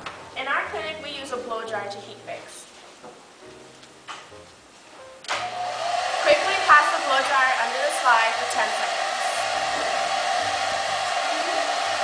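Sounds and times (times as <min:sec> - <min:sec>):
blow-dryer running: 0:05.3 - 0:12.0.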